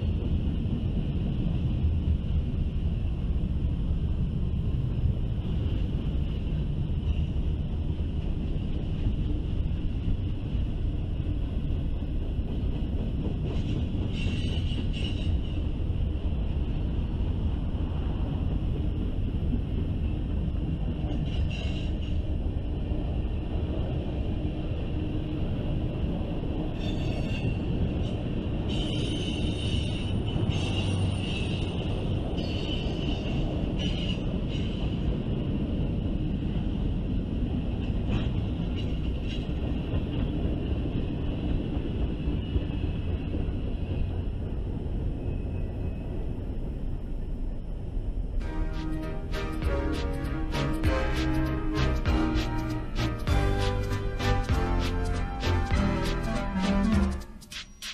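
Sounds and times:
freight train wheels rumbling: 0.0 - 57.9.

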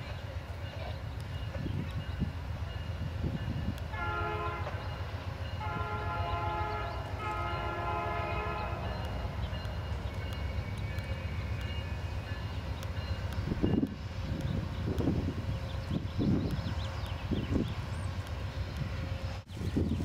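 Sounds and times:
low rumble of locomotives: 0.0 - 20.0
locomotive horn blasts: 3.9 - 4.9, 5.6 - 9.4.

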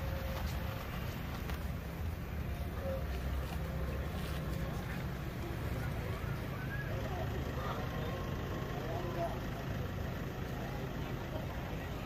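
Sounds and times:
people talking faintly: 0.0 - 12.0
vehicle engines idling: 0.0 - 12.0.

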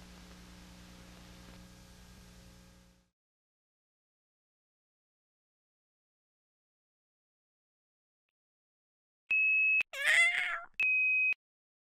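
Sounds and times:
cat meowing: 10.0 - 10.8.

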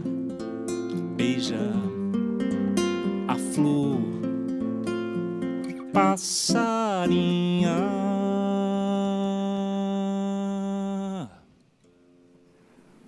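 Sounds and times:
person singing: 0.0 - 2.1, 3.1 - 4.4, 5.7 - 11.5
fingerstyle classical guitar: 0.0 - 10.2.

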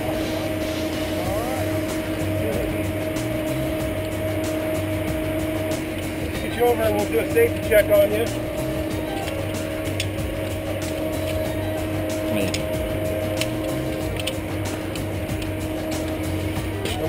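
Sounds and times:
mechanical hum: 0.0 - 17.0.

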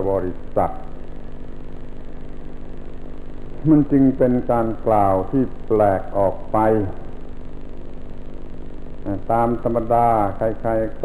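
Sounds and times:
tape hum and hiss with flutter: 0.0 - 11.0.

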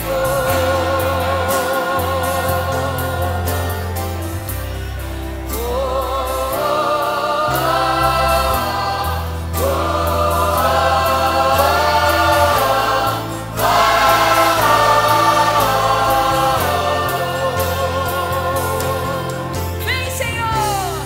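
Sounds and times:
choir singing a hymn: 0.0 - 21.0
low bass notes: 0.0 - 21.0.

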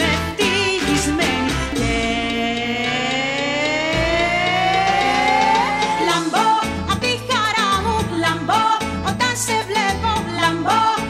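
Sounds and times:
bass line: 0.0 - 11.0
long note gliding upward: 2.4 - 6.1.

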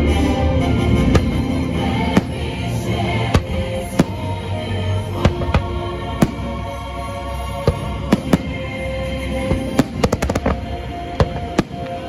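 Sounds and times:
show music: 0.0 - 12.0
fireworks bangs and cracks: 9.5 - 12.0.

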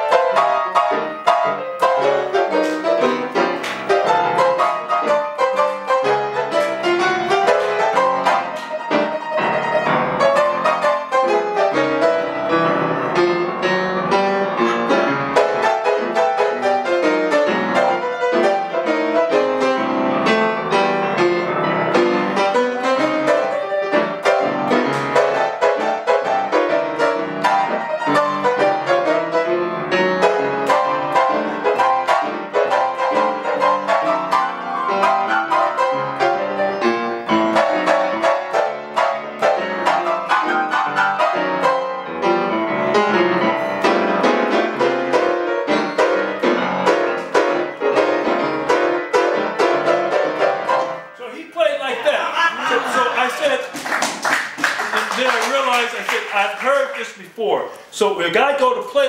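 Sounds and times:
solo grand piano: 0.0 - 51.2.

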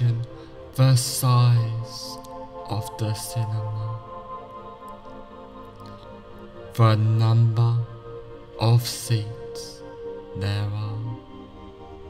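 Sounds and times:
ambient meditation music: 0.0 - 12.0
man intoning a long syllable: 6.7 - 11.4.

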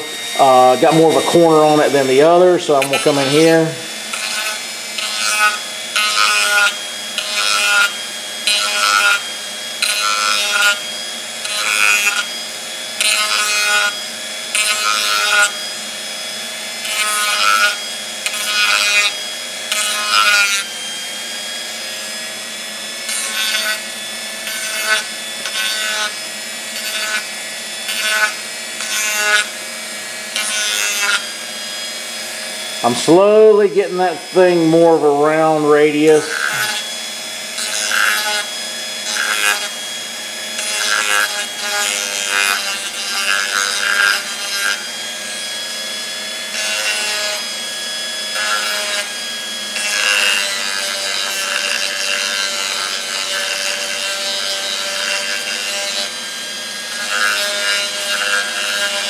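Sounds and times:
rotary tool grinding plastic: 0.0 - 59.0.

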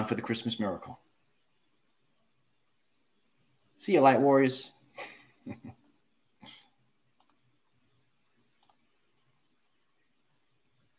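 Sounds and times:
faint sharp clicks: 7.2 - 7.5, 8.6 - 8.9.

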